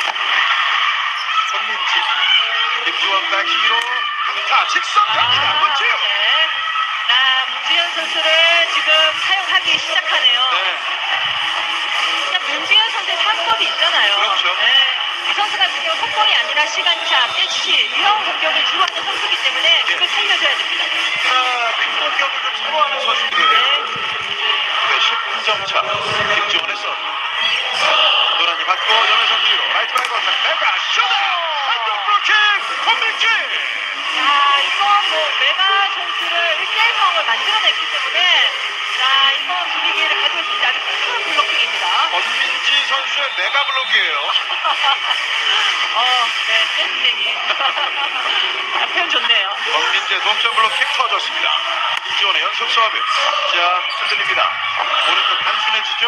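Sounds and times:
crowd cheering and shouting: 0.0 - 56.0.

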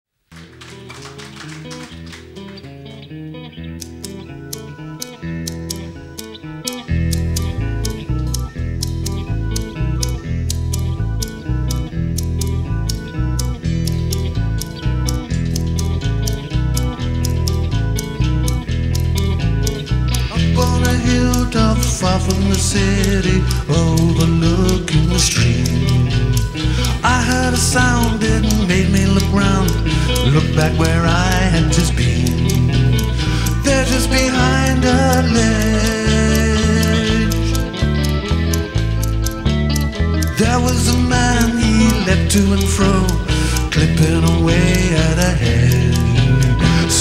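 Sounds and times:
clicking beat: 0.3 - 47.0
electric guitar: 0.3 - 47.0
keyboards: 0.3 - 47.0
bass and drums: 34.8 - 47.0.

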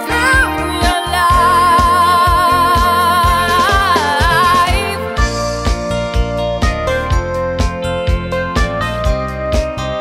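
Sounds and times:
dance pop music: 0.0 - 5.4
bass and kick beat: 0.0 - 10.0
sliding lead melody: 0.0 - 10.0.

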